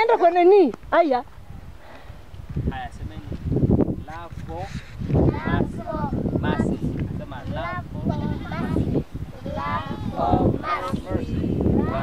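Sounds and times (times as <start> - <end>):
low wind rumble: 0.8 - 12.0
children calling and chattering: 5.1 - 12.0.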